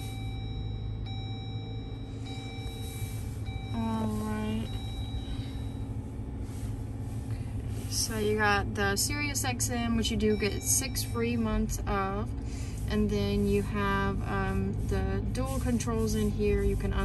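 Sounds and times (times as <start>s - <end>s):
car engine low rumble: 0.0s - 17.0s.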